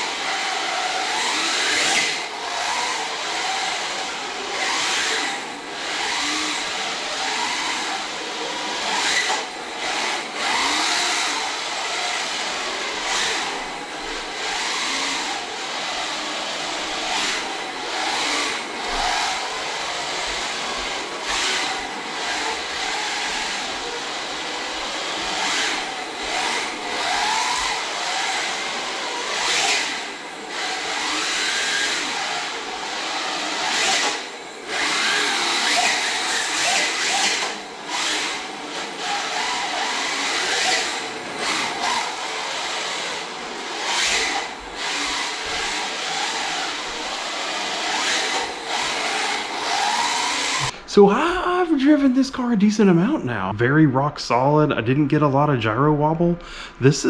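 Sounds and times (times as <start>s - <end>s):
electric motor whining: 0.0s - 51.0s.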